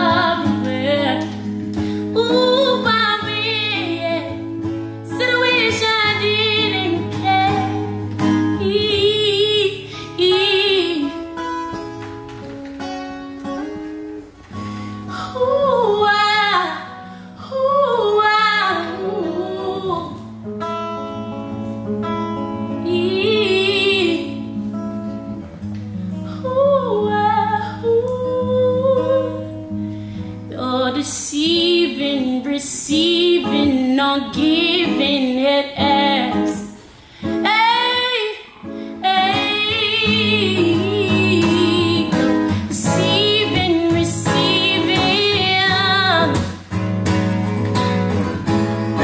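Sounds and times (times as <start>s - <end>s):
woman singing soul vocal runs: 0.0s - 11.7s, 15.1s - 20.4s, 22.6s - 24.7s, 26.3s - 29.8s, 30.5s - 46.6s
acoustic guitar accompaniment: 0.0s - 49.0s.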